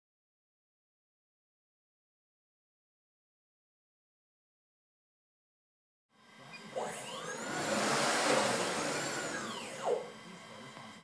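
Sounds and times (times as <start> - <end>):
electric motors whining: 6.2 - 11.0.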